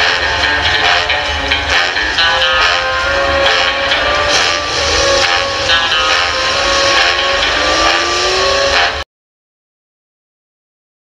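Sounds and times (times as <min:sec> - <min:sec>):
car engine running: 0:00.0 - 0:09.0
film soundtrack music: 0:00.0 - 0:09.0
slowly rising tone: 0:00.0 - 0:09.0.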